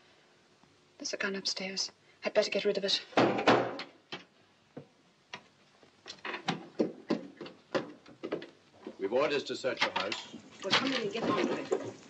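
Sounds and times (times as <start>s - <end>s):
wooden knocks and thumps: 6.1s - 9.0s, 9.8s - 12.0s.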